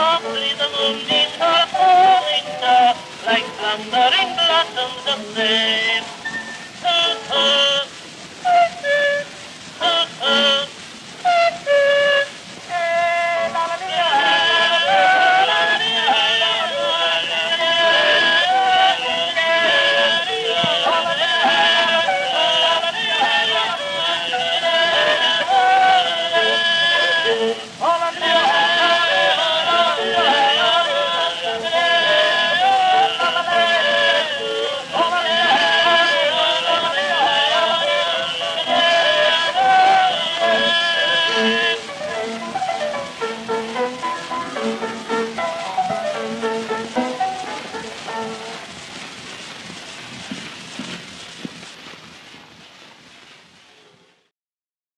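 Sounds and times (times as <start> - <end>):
instrumental accompaniment: 0.0 - 48.8
record surface hiss: 0.0 - 54.3.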